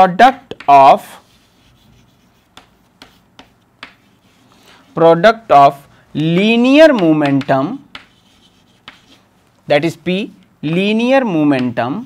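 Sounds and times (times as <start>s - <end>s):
chalk tapping: 0.4s - 9.6s, 11.4s - 12.0s
chalk scratching on a chalkboard: 0.9s - 5.8s, 7.0s - 9.4s.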